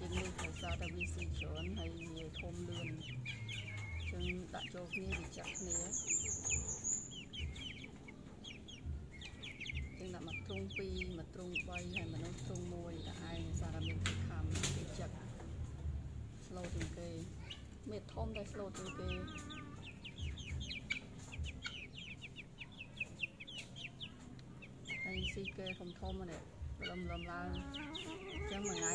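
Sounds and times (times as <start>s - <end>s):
young chickens peeping: 0.0s - 28.9s.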